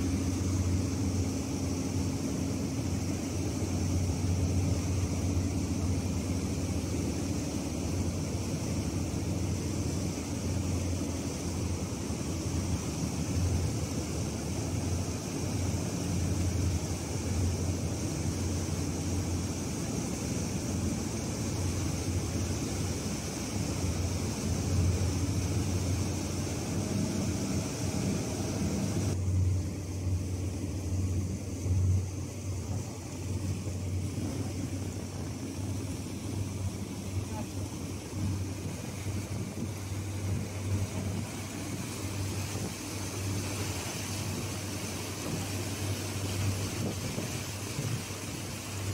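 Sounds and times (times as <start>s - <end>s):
boat engine droning: 0.0s - 48.9s
water and wind rushing along hull: 0.0s - 48.9s.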